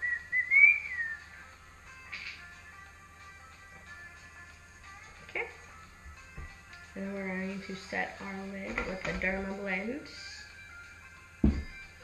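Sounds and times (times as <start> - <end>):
person whistling: 0.0 - 1.4.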